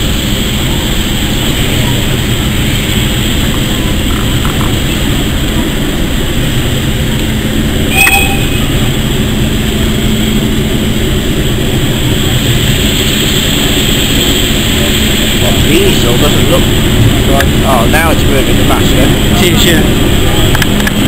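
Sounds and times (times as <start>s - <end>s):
locomotive rumbling: 0.0s - 21.0s
sharp metallic squeal: 7.9s - 9.3s.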